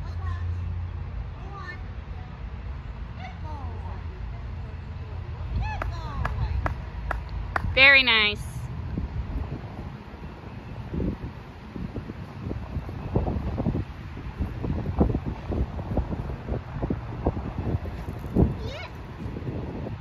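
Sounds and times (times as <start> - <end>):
wind buffeting microphone: 2.6 - 20.0.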